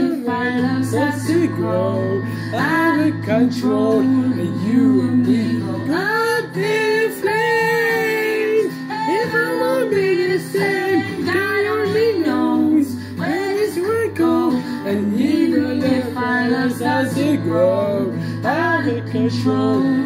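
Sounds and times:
musical accompaniment: 0.0 - 20.0
person singing: 0.0 - 20.0.

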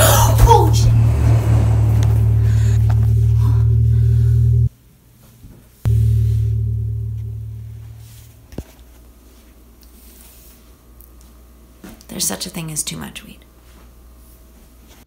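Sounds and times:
deep horror drone: 0.0 - 4.7, 5.9 - 8.5.

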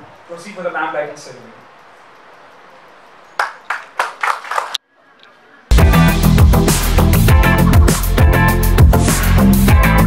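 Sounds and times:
hand claps ringing in hall: 3.4 - 4.8
loud music: 5.7 - 10.0.

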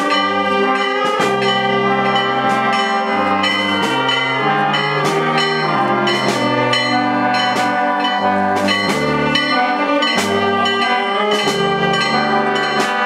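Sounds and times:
brass band playing a march: 0.0 - 13.0
percussion strikes: 0.0 - 13.0.

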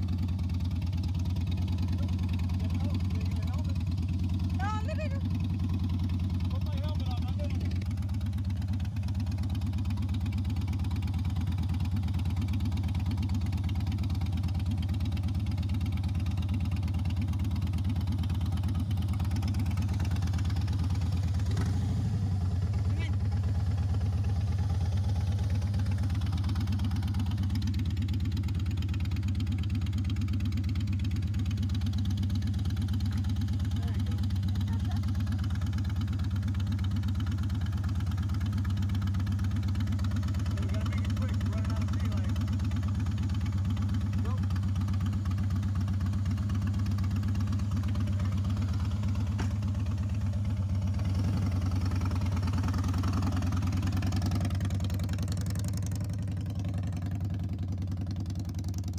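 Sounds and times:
motorcycle engine idling: 0.0 - 58.9.

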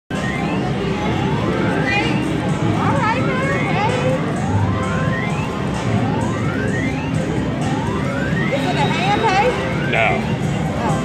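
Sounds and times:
casino crowd hubbub: 0.1 - 11.0
rising electronic sweep: 0.1 - 11.0.

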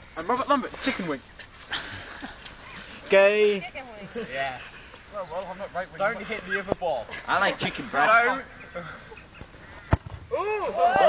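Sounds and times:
low outdoor background noise: 0.0 - 11.0
football kick thud: 9.9 - 10.4.

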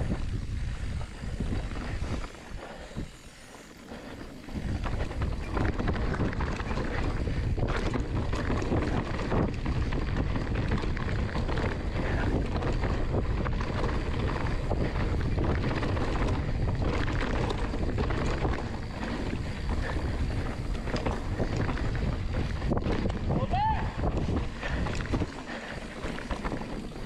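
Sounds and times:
bike clicks and rattles: 0.0 - 27.0
bike tyres rolling on dirt: 0.0 - 27.0
wind on microphone: 0.0 - 27.0.

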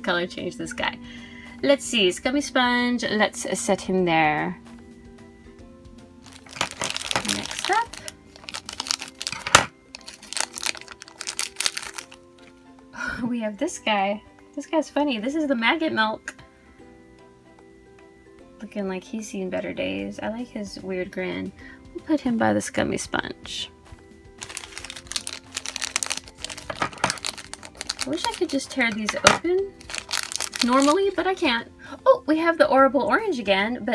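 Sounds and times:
soft background music: 0.0 - 33.9
plastic wrapper crinkling: 6.2 - 12.5, 24.4 - 31.3.

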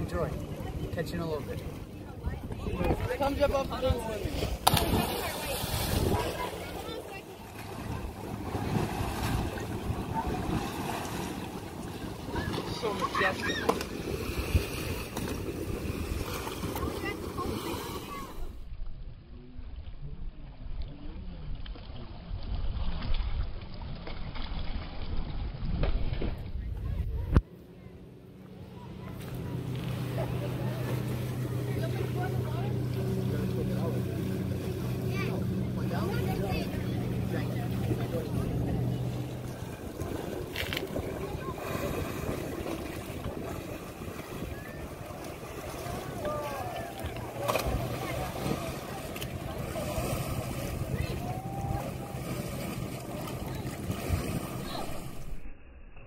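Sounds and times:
motorboat engine droning: 0.0 - 18.6, 26.6 - 55.5
wind: 0.0 - 56.0
distant voices and shouts: 12.0 - 14.1, 44.2 - 55.0.

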